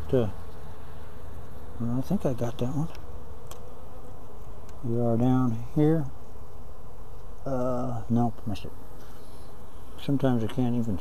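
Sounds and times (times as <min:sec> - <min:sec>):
honey bees buzzing: 0:00.0 - 0:11.0.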